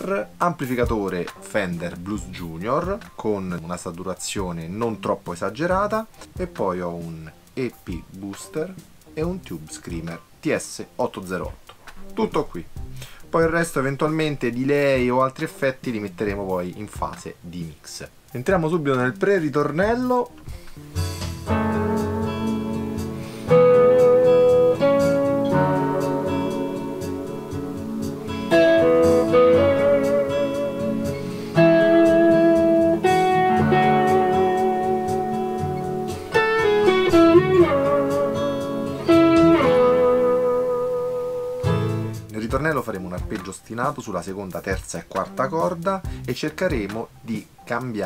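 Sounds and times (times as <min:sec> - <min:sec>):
overdriven electric guitar: 0:20.4 - 0:42.3.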